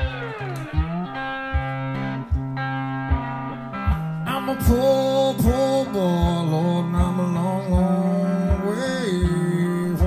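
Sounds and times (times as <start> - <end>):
low thump on each beat: 0.0 - 4.8, 5.4 - 9.7
slow blues guitar: 0.0 - 10.0.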